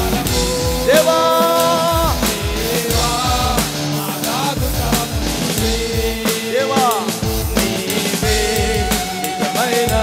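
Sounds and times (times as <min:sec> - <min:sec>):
drum kit strokes: 0:00.0 - 0:10.0
worship band music: 0:00.0 - 0:10.0.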